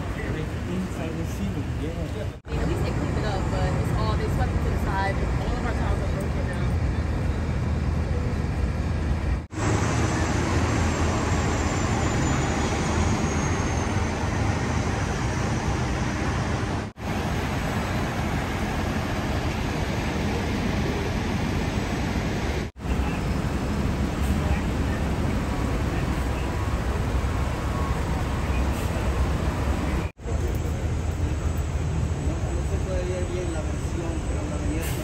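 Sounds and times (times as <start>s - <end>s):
city street traffic: 0.0s - 35.0s.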